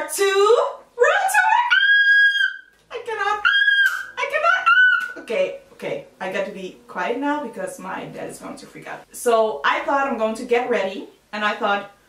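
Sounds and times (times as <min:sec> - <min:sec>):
woman squealing: 0:01.2 - 0:02.7, 0:03.3 - 0:05.2
woman exclaiming: 0:03.0 - 0:05.3.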